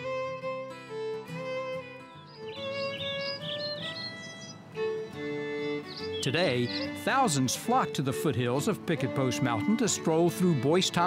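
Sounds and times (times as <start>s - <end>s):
soft instrumental music: 0.0s - 11.0s
bird chirping: 1.4s - 10.6s.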